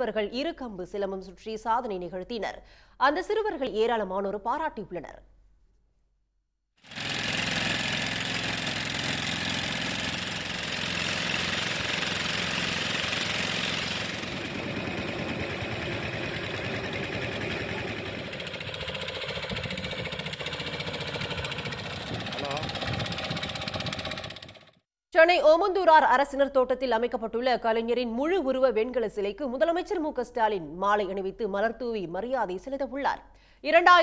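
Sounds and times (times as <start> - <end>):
outboard motors running: 6.9 - 24.8.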